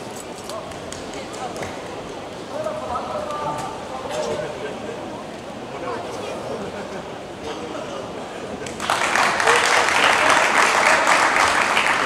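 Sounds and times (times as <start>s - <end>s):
indistinct voices in a hall: 0.0s - 12.0s.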